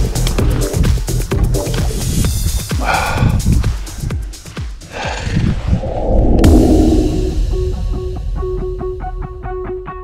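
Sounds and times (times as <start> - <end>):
background music: 0.0 - 10.0
whoosh with sharp hit: 5.6 - 8.0.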